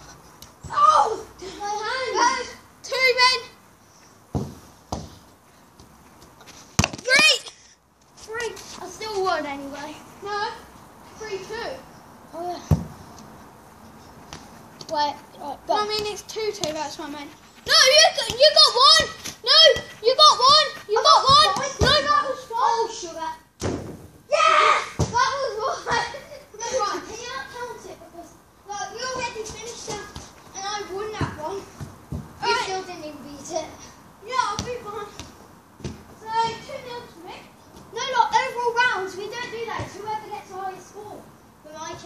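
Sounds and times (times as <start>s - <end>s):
child exclaiming: 0.7s - 3.5s, 7.1s - 7.6s, 17.7s - 23.4s, 24.3s - 31.6s, 32.4s - 35.2s
football being kicked: 4.3s - 5.2s
football thumps: 4.3s - 5.2s, 6.7s - 7.3s, 12.6s - 13.0s, 17.7s - 22.2s, 23.6s - 24.1s, 24.9s - 25.3s, 29.0s - 32.6s, 34.4s - 36.9s.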